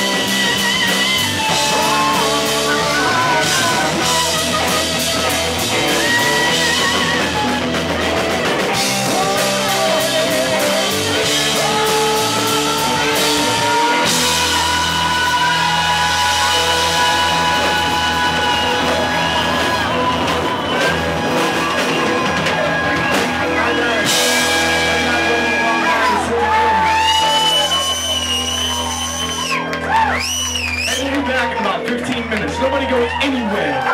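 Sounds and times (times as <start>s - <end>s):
saxophone: 0.0s - 22.8s
rock band holding a chord: 0.0s - 30.2s
drums: 0.0s - 33.9s
electric guitars: 0.0s - 33.9s.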